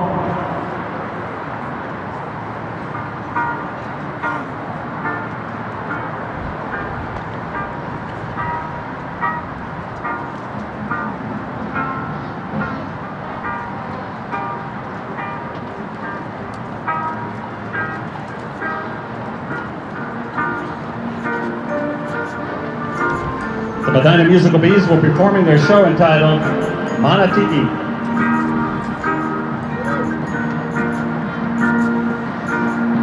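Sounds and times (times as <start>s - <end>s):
stadium background noise: 0.0s - 33.0s
short band instrument notes: 20.6s - 33.0s.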